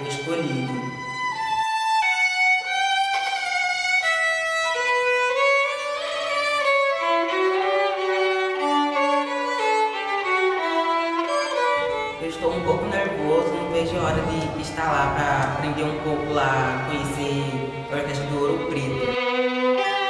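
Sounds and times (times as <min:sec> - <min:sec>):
violin bowed melody: 0:00.0 - 0:20.0.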